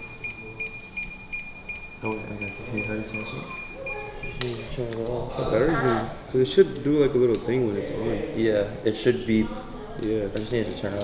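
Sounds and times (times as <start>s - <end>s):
high electronic beeps: 0.0s - 4.6s.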